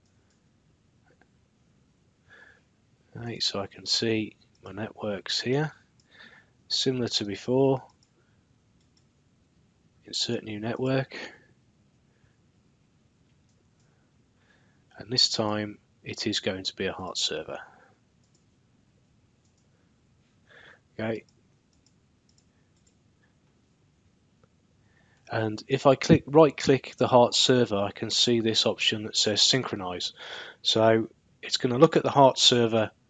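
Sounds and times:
computer mouse clicks: 7.9 - 8.2, 8.8 - 9.1, 18.2 - 18.5, 19.4 - 19.7, 21.2 - 23.0.

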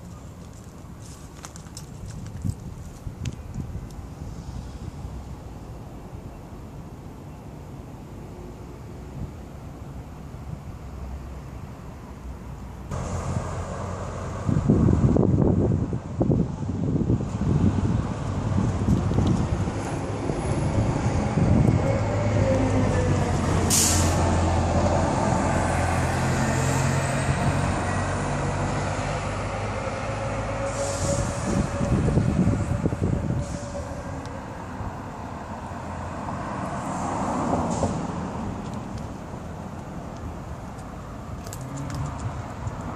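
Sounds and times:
heavy vehicle engine drone: 4.0 - 42.9
short sharp hiss: 23.7 - 24.2.

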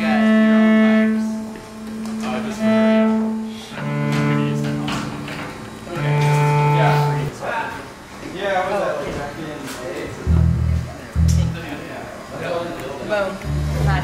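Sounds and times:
cello bowed notes: 0.0 - 7.3, 10.2 - 11.8, 13.4 - 14.0.

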